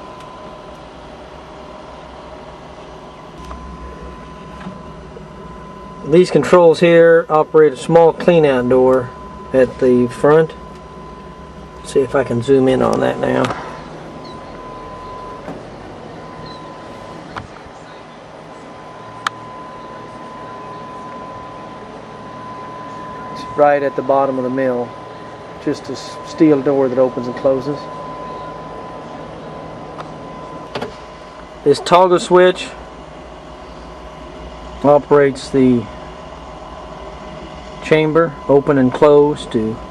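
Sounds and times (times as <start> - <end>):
faint steady whine: 0.0 - 39.9
low machinery hum: 0.0 - 39.9
steady mechanical noise: 0.0 - 39.9.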